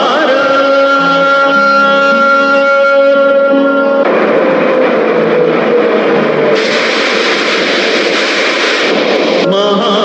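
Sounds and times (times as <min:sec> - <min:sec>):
loud steady rushing noise: 0:02.2 - 0:10.0.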